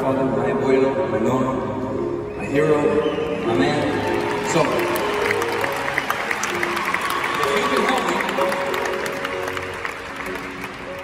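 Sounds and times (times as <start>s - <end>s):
soft piano chords: 0.0s - 11.0s
audience applauding: 3.4s - 11.0s.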